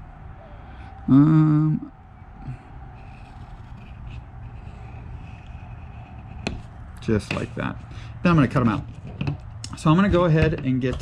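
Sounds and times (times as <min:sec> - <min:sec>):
low background hum: 0:00.0 - 0:11.0
pencil scratching on paper: 0:03.0 - 0:09.0.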